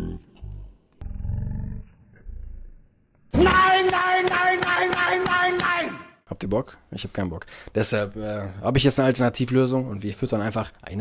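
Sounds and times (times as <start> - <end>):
deep rough growls: 0.0 - 3.0.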